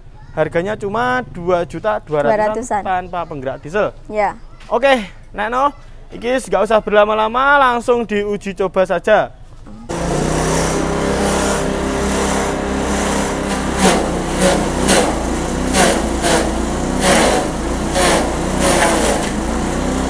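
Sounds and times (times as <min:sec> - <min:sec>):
chopper engine hum: 0:09.8 - 0:20.0
blades chopping frond: 0:09.9 - 0:20.0.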